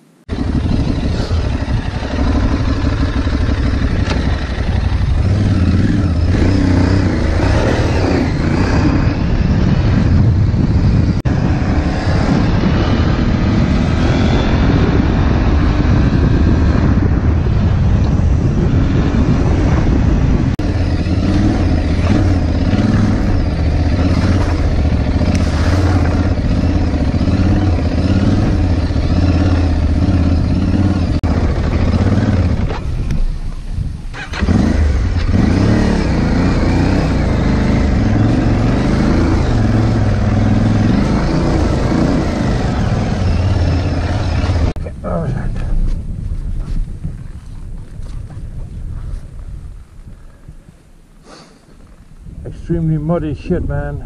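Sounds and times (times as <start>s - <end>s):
motorcycle engine under throttle: 0.3s - 45.8s.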